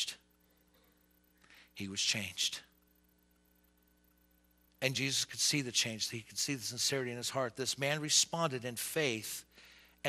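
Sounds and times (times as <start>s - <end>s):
man speaking: 0.0s - 0.2s, 1.8s - 2.7s, 4.8s - 9.4s
faint electrical hum: 0.0s - 10.0s.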